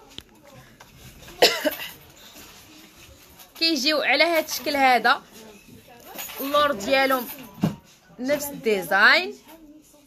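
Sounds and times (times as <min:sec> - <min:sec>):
woman coughing: 0:01.4 - 0:02.0.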